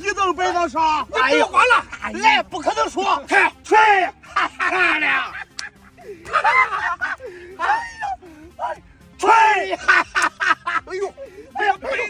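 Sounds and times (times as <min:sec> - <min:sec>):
men laughing and shouting: 0:00.0 - 0:12.0.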